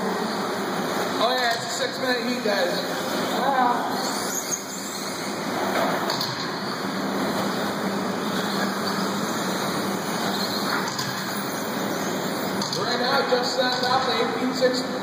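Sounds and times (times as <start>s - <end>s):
toy car motors and tyres rushing: 4.0s - 12.6s.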